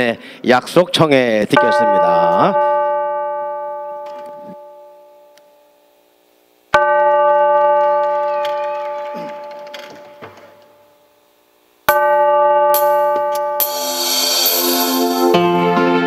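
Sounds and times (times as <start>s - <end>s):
bell-like chords through speakers: 1.5s - 6.1s, 6.8s - 11.3s, 11.9s - 15.6s.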